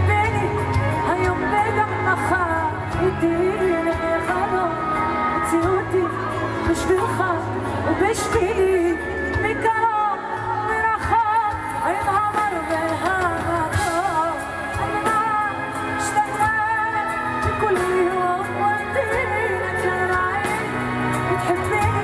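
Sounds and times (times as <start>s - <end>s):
bass and drums: 0.0s - 22.0s
woman singing: 0.0s - 22.0s.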